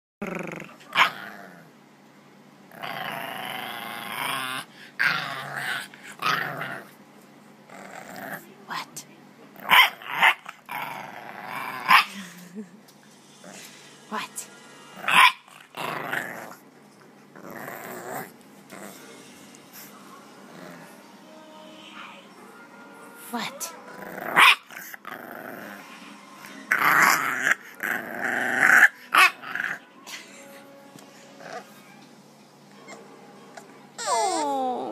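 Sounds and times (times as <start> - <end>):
puppy growling: 0.2 - 1.8, 2.7 - 7.0, 7.6 - 8.6, 9.5 - 12.6, 13.3 - 13.8, 15.0 - 21.1, 23.8 - 26.0, 26.6 - 29.8, 31.3 - 32.0, 32.7 - 34.9
puppy barking: 0.8 - 1.2, 9.7 - 10.5, 11.9 - 12.1, 15.1 - 15.5, 24.4 - 24.7
puppy whining calls: 32.7 - 34.9.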